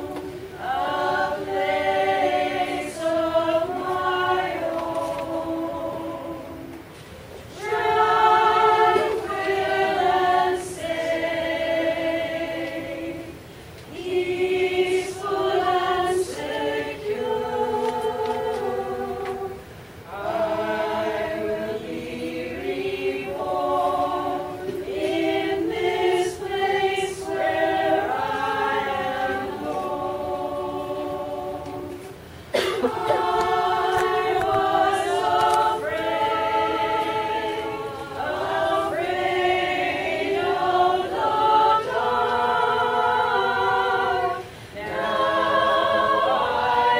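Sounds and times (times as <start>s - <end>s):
women's choir singing in harmony: 0.0s - 46.9s.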